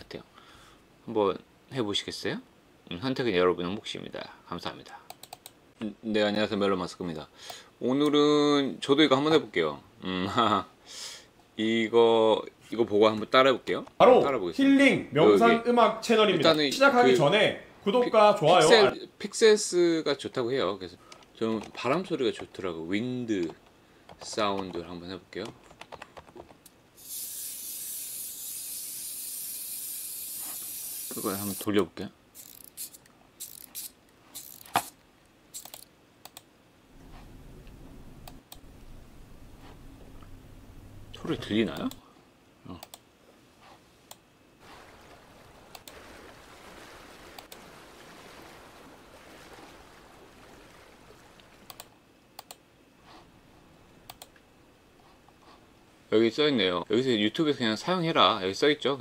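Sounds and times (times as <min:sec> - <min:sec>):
steady high hiss: 0:00.0 - 0:25.4, 0:26.6 - 0:59.0
computer mouse clicks: 0:04.9 - 0:05.6, 0:35.6 - 0:36.5, 0:37.7 - 0:38.7, 0:42.8 - 0:43.0, 0:51.6 - 0:52.6, 0:54.1 - 0:54.4
soft wind and water rush: 0:44.5 - 0:54.9.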